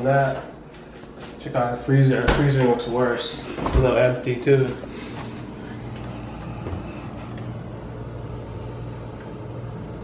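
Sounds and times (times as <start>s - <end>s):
refrigerator hum: 0.0s - 10.0s.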